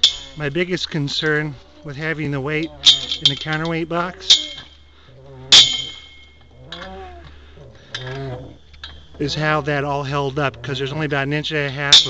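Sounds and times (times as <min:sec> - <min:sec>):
sharp ringing clink: 0:00.0 - 0:00.5, 0:02.7 - 0:04.9, 0:05.5 - 0:06.9
steady low rumble: 0:00.0 - 0:12.0.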